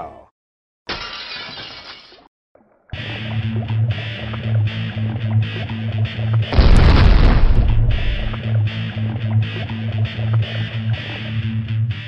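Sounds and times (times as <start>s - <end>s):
shattering crash: 6.6s - 8.4s.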